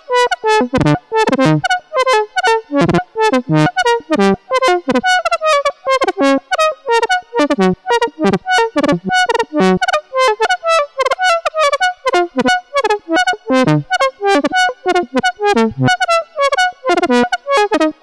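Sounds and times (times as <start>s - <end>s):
synthesizer fast random melody: 0.0s - 18.0s.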